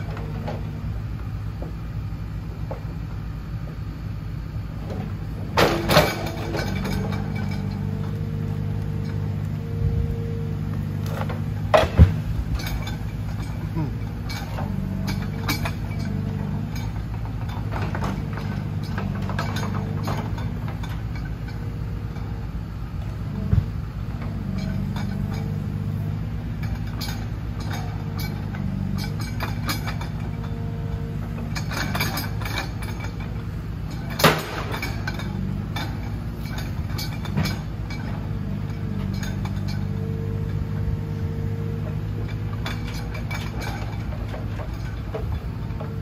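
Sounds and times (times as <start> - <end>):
diesel engine running: 0.0 - 46.0
hydraulic crane whine: 0.0 - 46.0.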